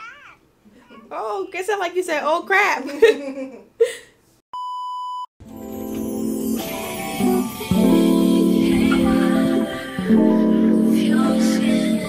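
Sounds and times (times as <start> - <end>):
acoustic guitar music: 5.4 - 12.0.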